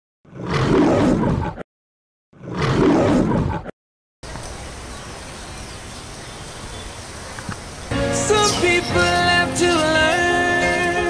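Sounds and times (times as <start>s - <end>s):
roar sound effect: 0.3s - 1.6s, 2.4s - 3.7s.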